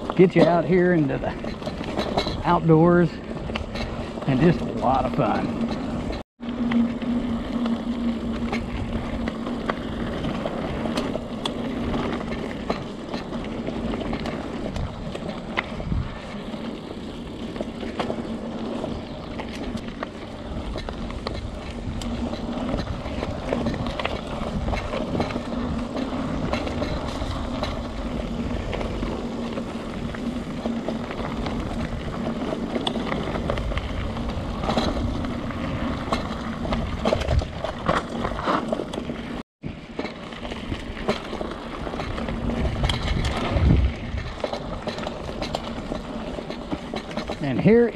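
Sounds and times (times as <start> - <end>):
bike knocks and rattles: 0.0 - 6.2, 7.4 - 47.9
bike tyres rumbling on dirt trail: 0.0 - 47.9
steady low hum: 0.7 - 12.7.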